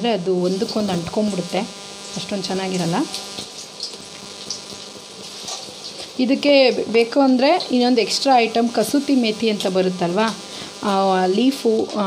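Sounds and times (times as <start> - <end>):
oil bubbling and crackling: 0.0 - 12.0.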